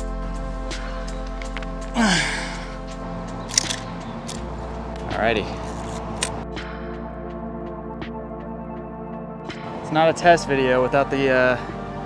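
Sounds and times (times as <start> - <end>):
background music held tones: 0.0 - 12.0.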